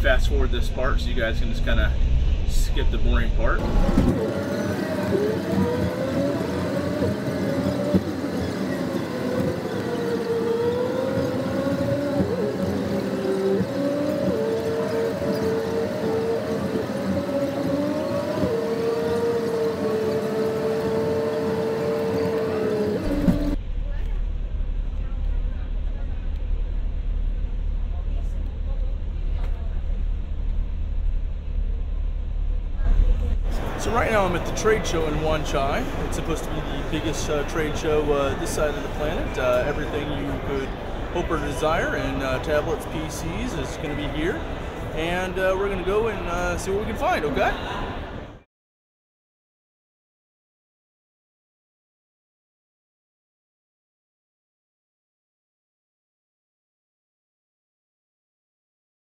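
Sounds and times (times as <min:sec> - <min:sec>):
low muffled rumble: 0:00.0 - 0:08.8, 0:23.0 - 0:48.2
pitched tones rising and falling: 0:00.0 - 0:23.6
sped-up bus engine and road noise: 0:00.0 - 0:48.5.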